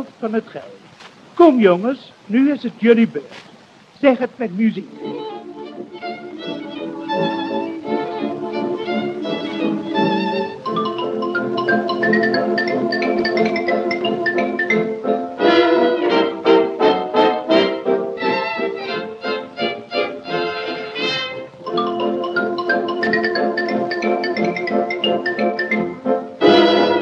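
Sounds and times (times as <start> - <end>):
instrumental dance-band music: 5.2 - 27.0.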